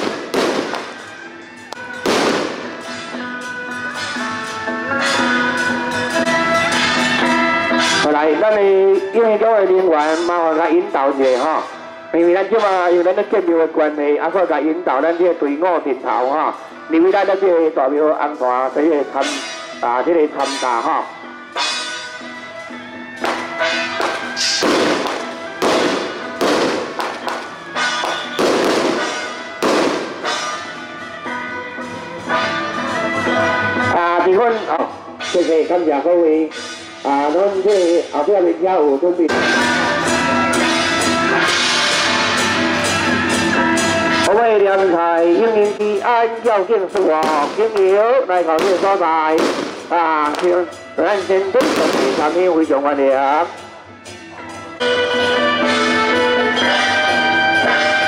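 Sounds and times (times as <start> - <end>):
firecracker bang: 0.0 - 1.1, 2.0 - 3.1, 23.2 - 30.6, 47.0 - 50.6, 51.6 - 52.4
music with sustained tones: 53.6 - 58.0.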